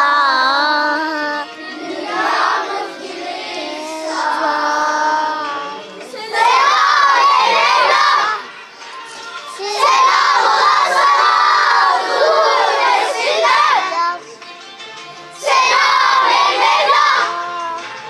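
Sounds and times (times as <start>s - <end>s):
children singing in unison: 0.0s - 14.2s, 15.3s - 18.0s
children shouting chant: 1.6s - 8.5s, 9.6s - 14.2s, 15.4s - 18.0s.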